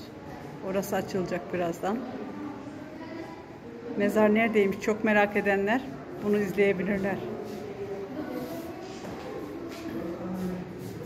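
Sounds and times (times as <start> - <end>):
people talking in echoing hall: 0.0 - 11.0.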